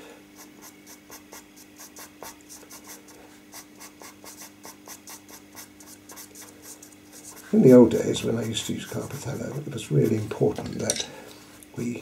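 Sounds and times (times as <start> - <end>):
low steady hum: 0.0 - 12.0
pencil scratching on paper: 0.4 - 10.4.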